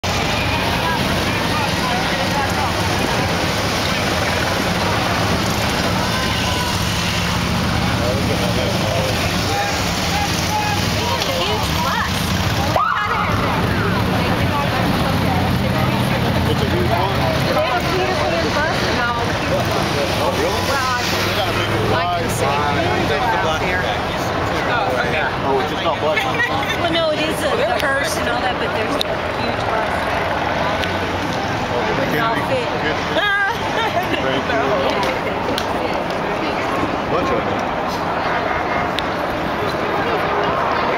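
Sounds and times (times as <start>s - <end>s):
crowd talking: 0.0s - 40.9s
motorcycle engines running: 0.0s - 40.9s.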